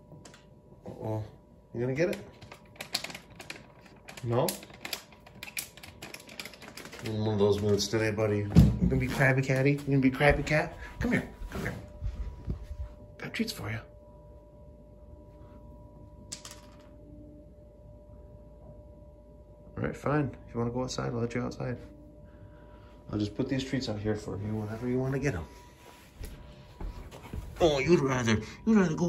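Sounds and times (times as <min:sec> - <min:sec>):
faint electrical hum: 0:00.0 - 0:29.0
thin high whine: 0:07.6 - 0:29.0.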